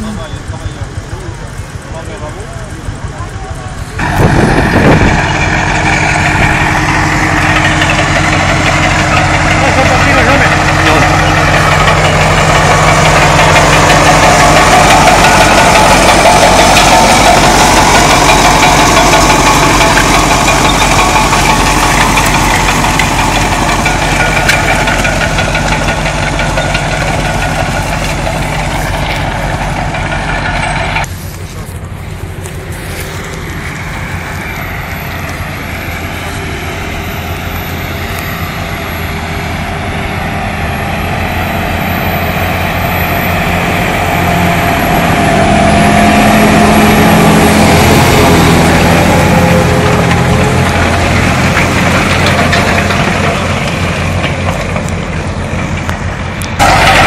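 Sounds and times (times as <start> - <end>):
tractor engine under load: 0.0 - 57.0.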